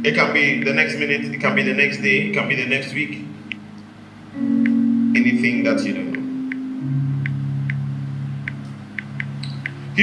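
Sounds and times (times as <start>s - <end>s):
keyboard sustained low chord: 0.0s - 10.0s.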